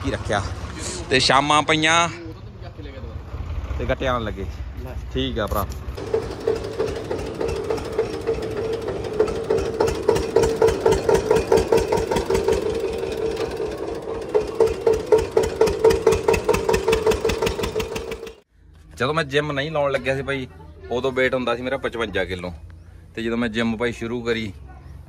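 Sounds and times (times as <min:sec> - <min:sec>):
tractor diesel engine running: 0:05.8 - 0:18.5.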